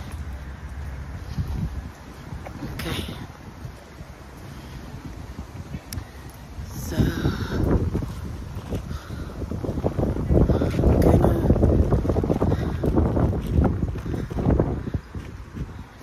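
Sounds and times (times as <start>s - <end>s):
wind buffeting microphone: 0.0s - 16.0s.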